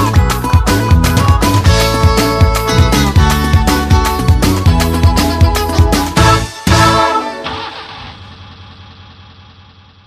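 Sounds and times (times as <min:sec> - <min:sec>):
car engine running: 0:07.5 - 0:10.0.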